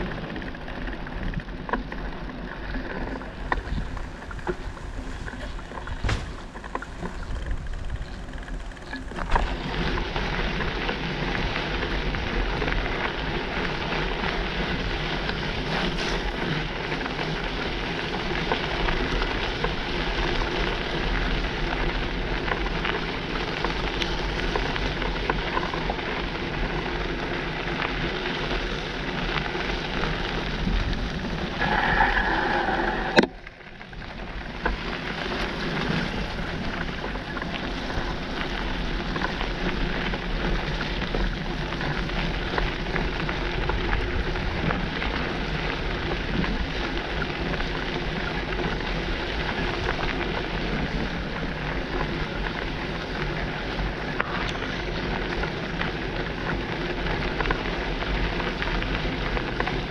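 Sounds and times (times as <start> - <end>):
tyres rolling on wet gravel: 0.0 - 59.9
wind on microphone: 2.6 - 25.0, 29.7 - 59.9
brake squeal: 31.4 - 33.8.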